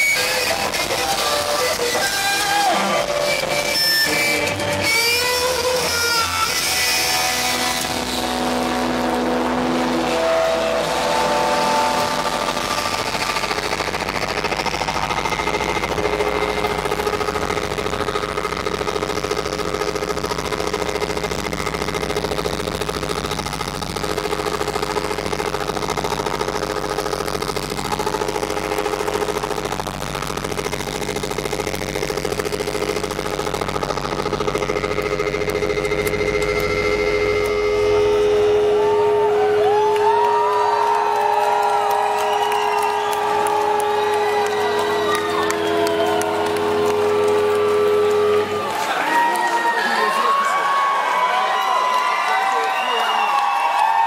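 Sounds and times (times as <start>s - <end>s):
distorted electric guitar feedback: 0.0s - 54.0s.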